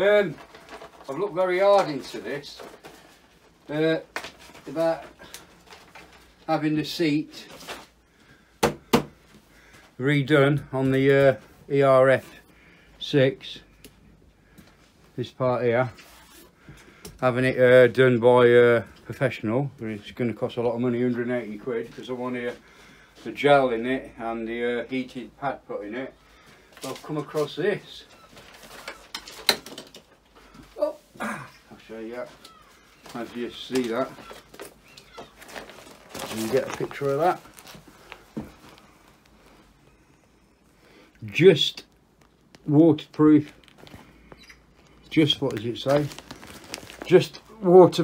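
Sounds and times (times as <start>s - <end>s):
packaging rustling: 0.0s - 8.1s, 26.4s - 40.2s, 41.9s - 48.0s.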